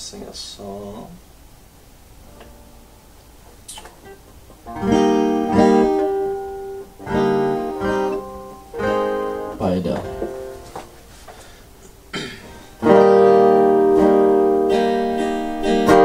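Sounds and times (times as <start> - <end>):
faint guitar notes: 2.2 - 11.1, 11.8 - 16.0
acoustic guitar strumming chords: 2.2 - 16.0.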